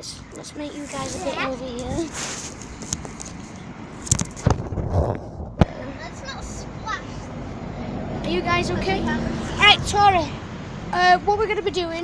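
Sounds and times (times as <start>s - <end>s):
microphone handling rustle: 0.8s - 5.8s.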